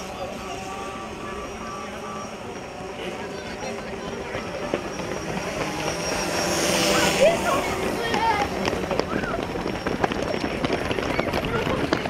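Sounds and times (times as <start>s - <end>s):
motor hum: 0.0s - 12.0s.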